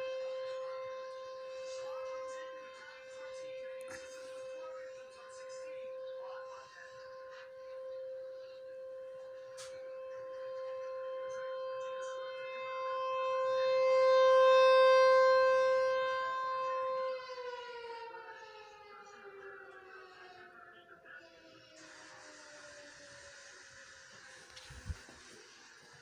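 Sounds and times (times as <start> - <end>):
warning siren wailing: 0.0 - 26.0.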